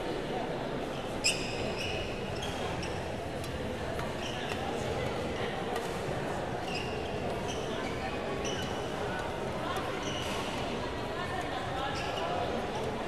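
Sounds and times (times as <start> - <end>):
shoes squeaking on court: 1.2 - 3.0, 6.6 - 8.8.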